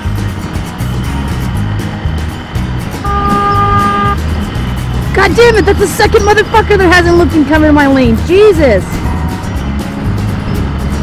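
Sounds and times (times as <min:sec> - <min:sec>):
music with bass beat: 0:00.0 - 0:05.6
road traffic noise: 0:00.0 - 0:11.0
vehicle horn: 0:03.0 - 0:04.3.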